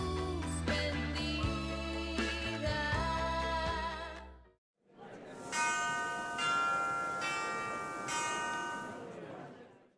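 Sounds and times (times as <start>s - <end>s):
bell-like chime notes: 5.5s - 9.1s.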